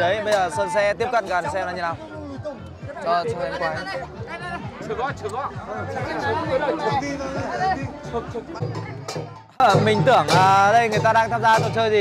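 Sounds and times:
background music: 0.0s - 12.0s
men talking: 0.0s - 12.0s.

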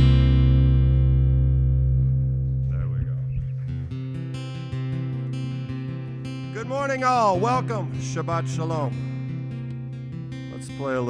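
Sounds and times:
held bass note: 0.0s - 4.4s
acoustic guitar chord ringing: 0.0s - 11.0s.

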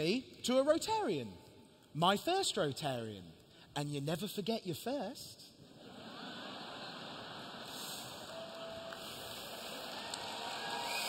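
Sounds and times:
audience laughing: 5.7s - 8.9s
audience applauding: 6.8s - 11.0s.

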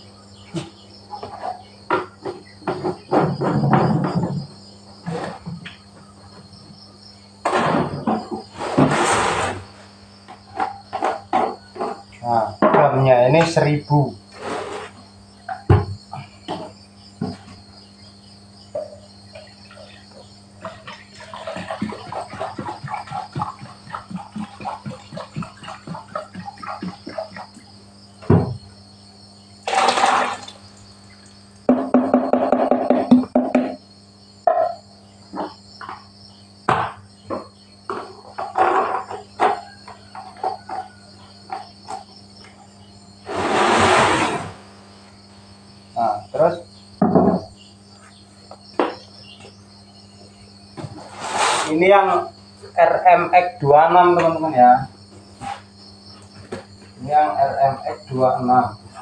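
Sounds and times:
insect chorus: 0.0s - 59.0s
plastic containers clattering: 0.5s - 6.7s, 7.4s - 13.6s, 18.8s - 28.6s, 29.7s - 30.7s, 36.7s - 42.1s.

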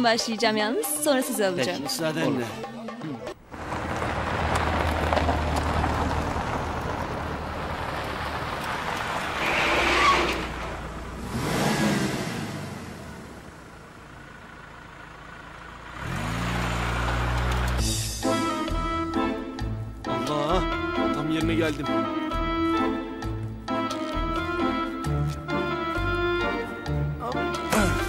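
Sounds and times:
music: 0.0s - 3.4s, 17.8s - 28.0s
road noise: 3.3s - 28.0s
car engine running: 3.4s - 18.2s.

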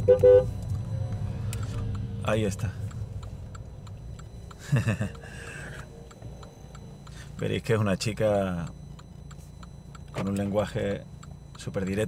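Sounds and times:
car horn toots: 0.0s - 0.6s
car engine rumble from inside: 0.0s - 12.0s.

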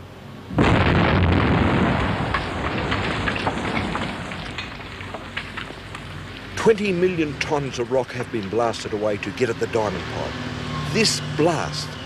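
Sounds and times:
loud explosion: 0.5s - 4.7s
rumble with crackles: 0.6s - 10.0s.

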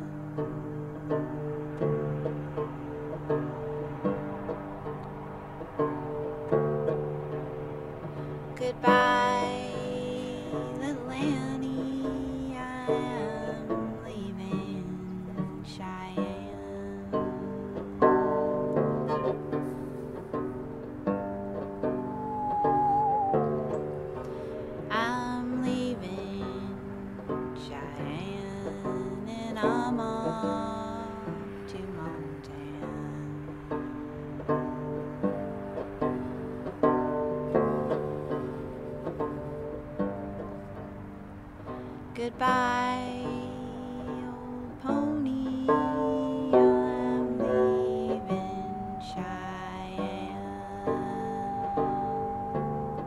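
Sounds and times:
banjo picked slowly: 0.0s - 53.0s
musical saw wavering tone: 19.1s - 27.2s, 43.3s - 53.0s.

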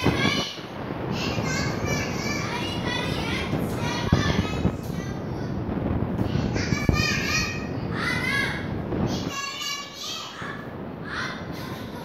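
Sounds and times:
children speaking: 0.0s - 12.0s.

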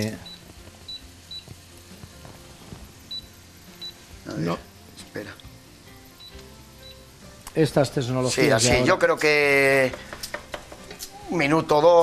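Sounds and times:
short high-pitched beeps: 0.2s - 1.5s, 3.1s - 4.1s, 6.2s - 7.1s
spoon knocking against pot: 9.8s - 10.9s.

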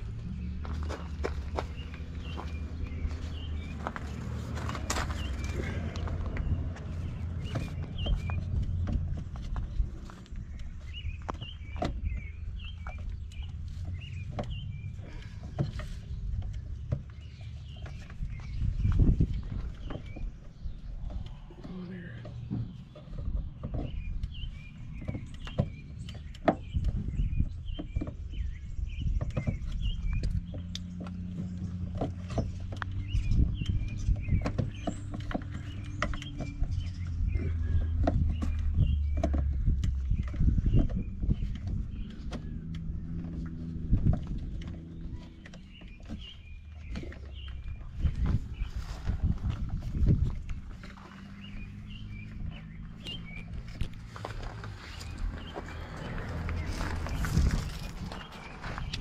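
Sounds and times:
low rumble with steady hum: 0.0s - 59.0s.

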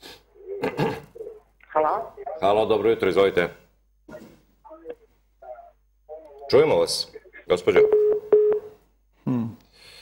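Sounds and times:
voice on phone line: 4.1s - 8.2s
telephone line tone: 7.8s - 8.7s.

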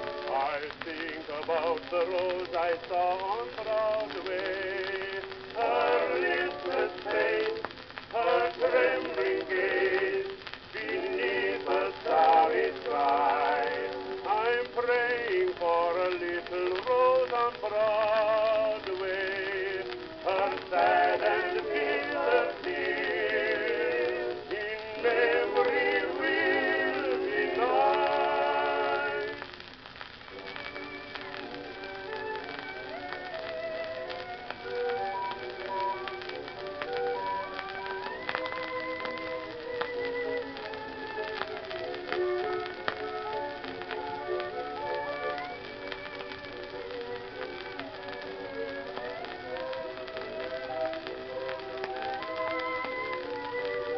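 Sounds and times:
old record instrumental melody: 0.0s - 53.9s
record surface crackle: 0.0s - 53.9s
male vocal quartet singing ballad: 0.2s - 29.4s.

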